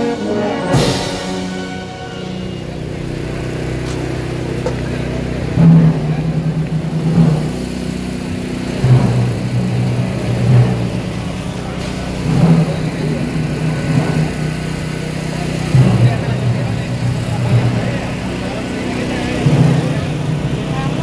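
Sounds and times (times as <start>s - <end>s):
brass band playing bass notes: 0.0s - 21.0s
murmuring crowd: 0.0s - 21.0s.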